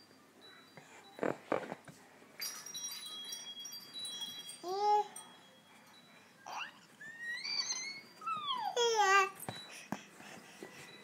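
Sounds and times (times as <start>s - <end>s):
high tinkling chimes: 0.0s - 1.3s, 2.4s - 11.0s.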